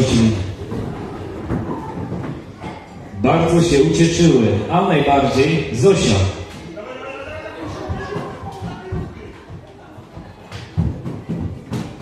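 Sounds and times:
wooden chairs knocking and scraping: 0:00.2 - 0:03.1, 0:07.6 - 0:12.0
footsteps running on wooden floor: 0:07.3 - 0:12.0.

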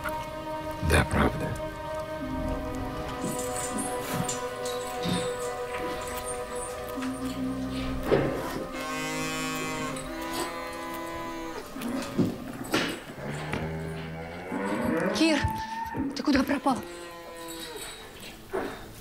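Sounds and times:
cows mooing: 0:02.2 - 0:18.2.

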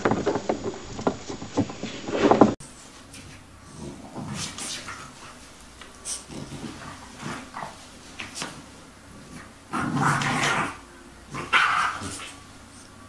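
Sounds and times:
puppy grumbling: 0:03.6 - 0:13.0.

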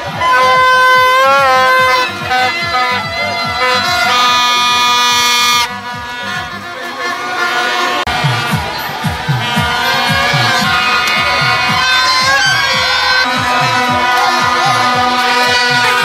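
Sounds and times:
toy trumpet horn blasts: 0:00.0 - 0:08.2, 0:09.4 - 0:16.0
fast steady beat: 0:00.0 - 0:16.0.

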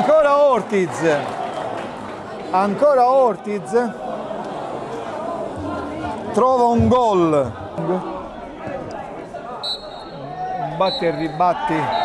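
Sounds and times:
murmur of spectators' voices: 0:00.0 - 0:12.0
shrill referee's whistle blast: 0:09.6 - 0:10.2, 0:10.8 - 0:12.0.

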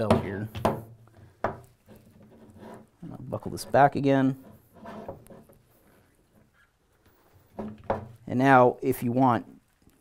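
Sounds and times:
faint rubbing of cord on belt: 0:01.1 - 0:07.8.

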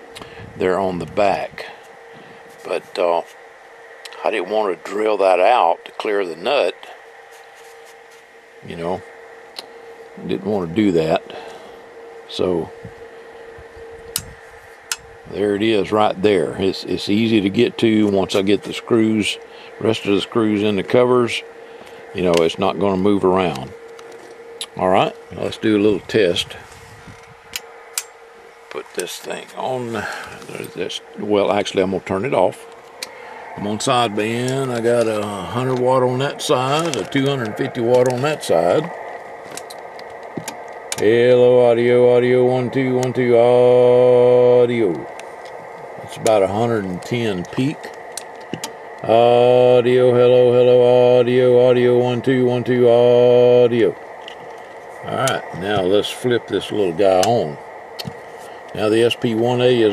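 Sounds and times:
faint high whine: 0:00.0 - 0:59.9
low hiss: 0:00.0 - 0:59.9
steady low hum: 0:00.0 - 0:59.9.

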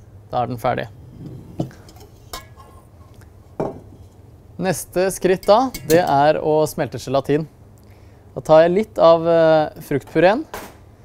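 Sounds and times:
metal bowl clinking: 0:01.2 - 0:04.2, 0:05.2 - 0:06.3.

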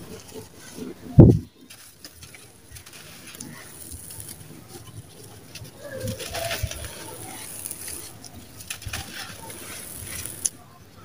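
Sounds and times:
powder sifting through fingers: 0:00.0 - 0:10.5
falling grains crackling: 0:01.5 - 0:10.6
bird cooing: 0:03.3 - 0:10.6.

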